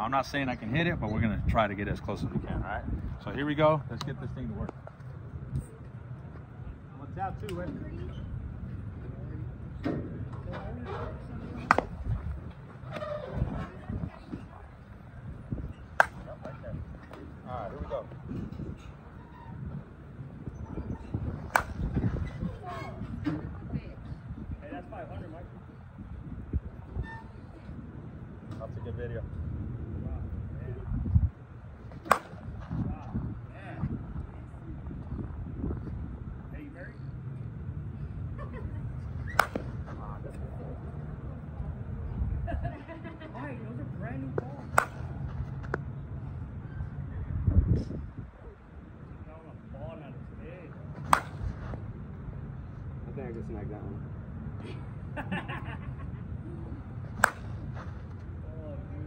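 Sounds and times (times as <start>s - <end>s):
steady low rumble: 0.0s - 59.0s
bat hitting softball crack: 11.6s - 12.3s, 15.8s - 16.5s, 21.4s - 22.2s, 31.9s - 32.7s, 39.2s - 40.0s, 44.6s - 45.8s, 51.0s - 51.7s, 57.1s - 57.8s.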